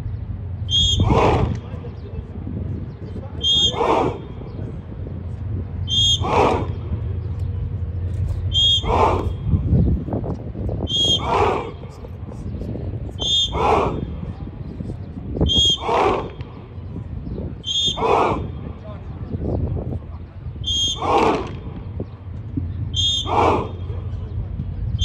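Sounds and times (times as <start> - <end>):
shrill whistle blasts: 0.7 - 1.4, 3.4 - 4.0, 5.8 - 6.6, 8.5 - 9.5, 10.9 - 11.5, 13.2 - 13.8, 15.4 - 16.1, 17.6 - 18.2, 20.6 - 21.2, 22.9 - 24.0
men shouting in unison: 0.8 - 1.6, 3.5 - 4.4, 6.0 - 6.8, 8.6 - 9.6, 11.0 - 11.9, 13.4 - 14.3, 15.8 - 16.4, 17.9 - 18.6, 20.9 - 21.6, 23.1 - 23.9.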